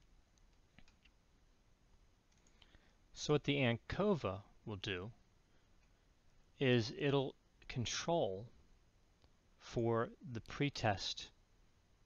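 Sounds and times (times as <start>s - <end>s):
faint clicks: 2.3s - 2.8s.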